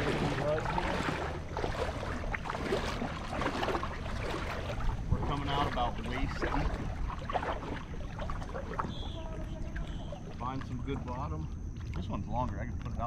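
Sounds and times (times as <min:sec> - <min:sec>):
small waves lapping against hull: 0:00.0 - 0:13.0
wind buffeting microphone: 0:00.0 - 0:13.0.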